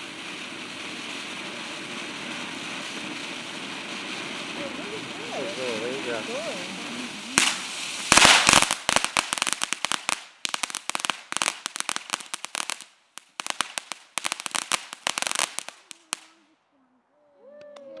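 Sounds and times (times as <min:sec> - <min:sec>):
firework crackling: 0:00.0 - 0:16.5.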